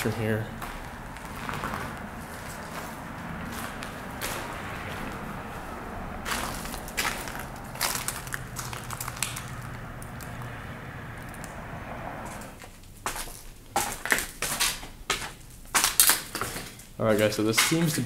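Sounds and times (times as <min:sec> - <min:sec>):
footsteps crunching over debris: 0:00.0 - 0:10.5, 0:12.3 - 0:18.0.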